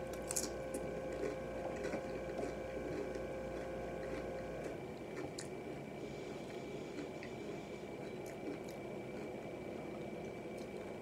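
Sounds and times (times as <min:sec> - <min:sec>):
crisp crunches: 0:00.1 - 0:04.3
chewing tortilla chips: 0:00.1 - 0:11.0.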